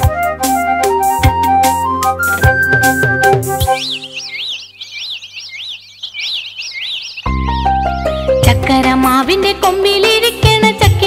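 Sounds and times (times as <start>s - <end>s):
folk song instrumental backing: 0.0s - 4.2s
bird chirps: 2.2s - 8.8s.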